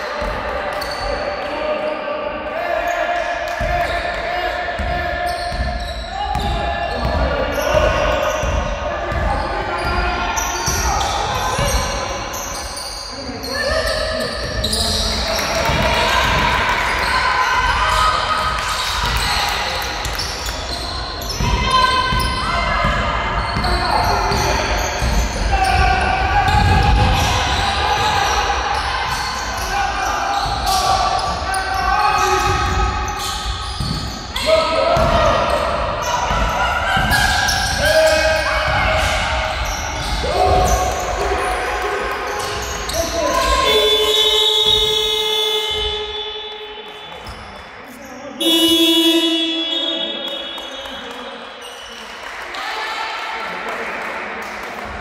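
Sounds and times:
players and coaches shouting: 0:00.0 - 0:33.2, 0:34.3 - 0:46.6, 0:48.4 - 0:50.7.

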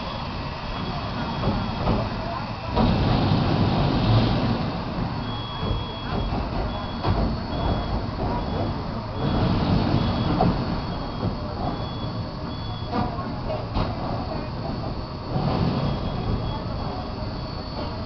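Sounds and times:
steam locomotive rumble and hiss: 0:00.0 - 0:18.0.

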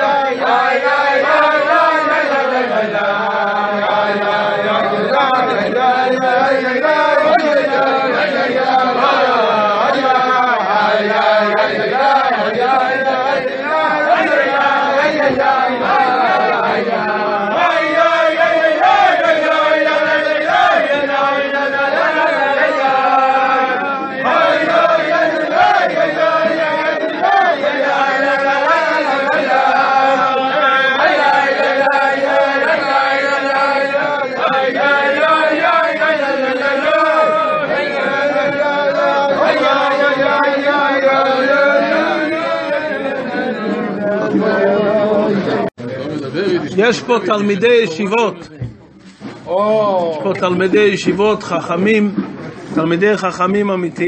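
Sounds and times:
men singing wordless melody: 0:00.0 - 0:45.7.

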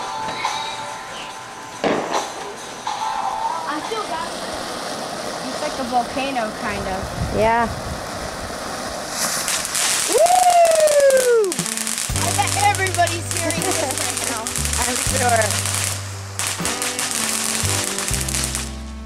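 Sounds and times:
firework fountain hissing and crackling: 0:00.0 - 0:19.0
music with steady bass line: 0:11.6 - 0:19.0.

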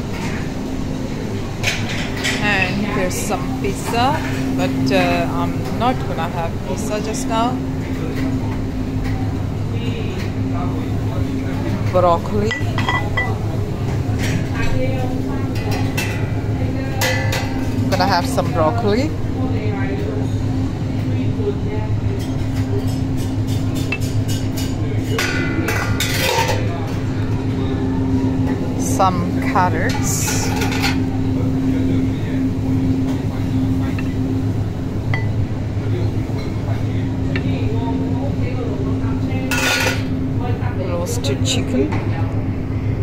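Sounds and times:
diners' voices: 0:00.0 - 0:43.0
steady low hum: 0:00.0 - 0:43.0
utensils clinking on dishes: 0:11.9 - 0:13.4, 0:22.1 - 0:27.0, 0:29.4 - 0:31.1, 0:39.5 - 0:40.1.

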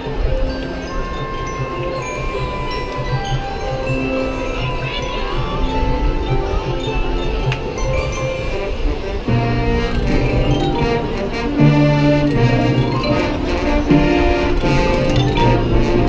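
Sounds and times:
marching band playing chords: 0:00.0 - 0:16.0.

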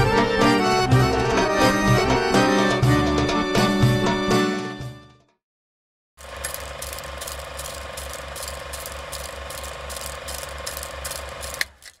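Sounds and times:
clicking mechanism running: 0:06.2 - 0:12.0
sharp mechanism click: 0:06.4 - 0:12.0.

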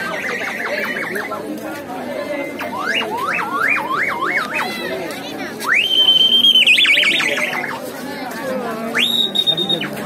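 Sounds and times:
crowd chatter: 0:00.0 - 0:10.0
shrill whistle-like tones: 0:02.5 - 0:04.8, 0:05.6 - 0:07.8, 0:08.9 - 0:10.0.

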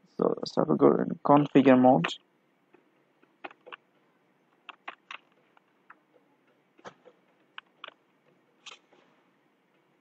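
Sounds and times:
computer keyboard keystrokes: 0:04.6 - 0:06.0.

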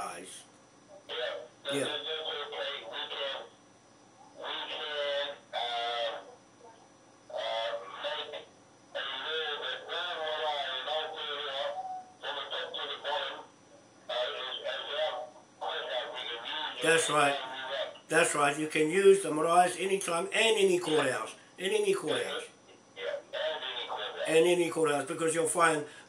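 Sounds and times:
man answering: 0:00.0 - 0:00.4, 0:01.1 - 0:03.4, 0:16.8 - 0:26.0
voice over phone loudspeaker: 0:00.0 - 0:00.4, 0:01.1 - 0:03.5, 0:04.4 - 0:06.3, 0:07.3 - 0:08.4, 0:09.0 - 0:13.5, 0:14.1 - 0:26.0.

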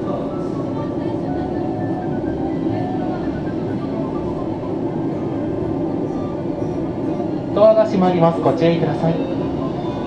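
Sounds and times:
monorail car humming: 0:00.0 - 0:10.0.

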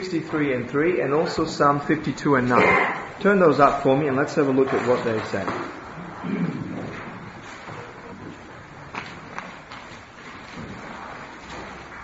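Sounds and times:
pages rustling: 0:06.8 - 0:12.0.

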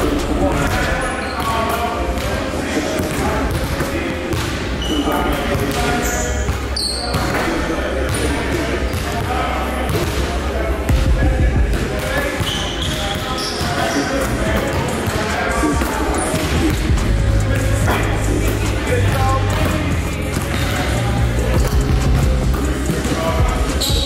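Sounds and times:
indistinct talking: 0:00.0 - 0:24.0.

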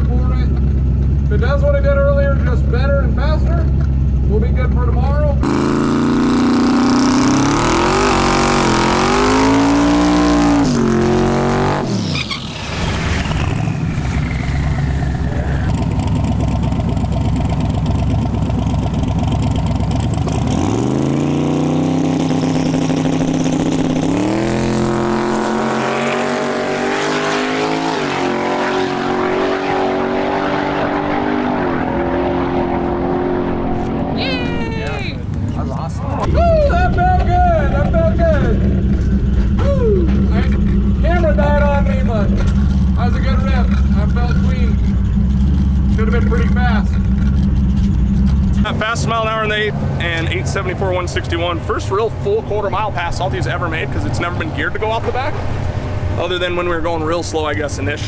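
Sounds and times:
drag car engine revving: 0:05.4 - 0:34.2, 0:36.2 - 0:58.0.

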